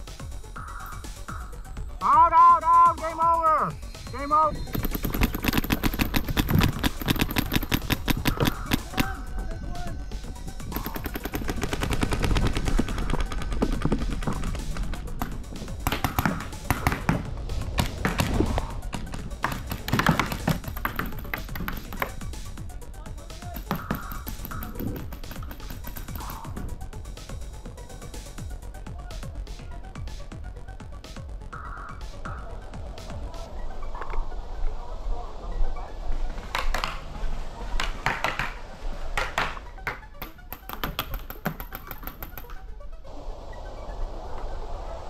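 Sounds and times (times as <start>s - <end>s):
music: 0.0s - 45.0s
paintball markers firing: 4.6s - 9.3s, 10.6s - 22.2s, 23.4s - 26.5s, 39.2s - 42.6s.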